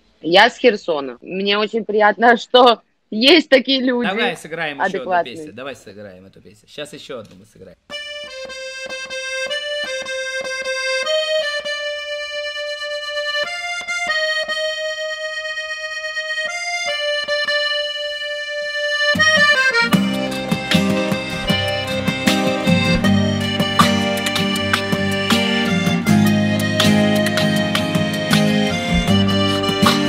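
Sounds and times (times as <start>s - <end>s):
button accordion melody: 4.0s - 5.5s, 7.9s - 30.0s
strummed acoustic guitar: 19.1s - 30.0s.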